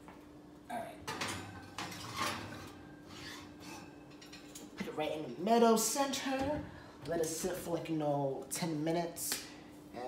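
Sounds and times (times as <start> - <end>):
glass dish scraping on metal rack: 1.2 - 4.6.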